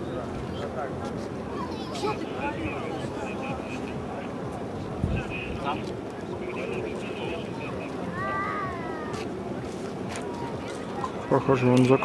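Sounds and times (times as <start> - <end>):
people talking: 0.0 - 9.2, 10.1 - 12.0.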